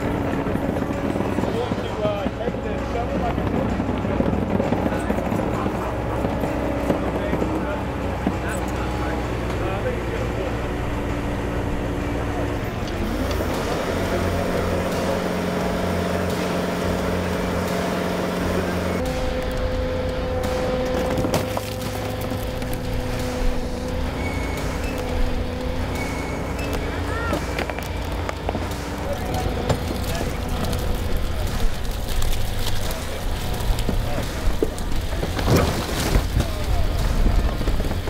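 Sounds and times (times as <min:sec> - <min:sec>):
heavy diesel engines running: 0:00.0 - 0:38.0.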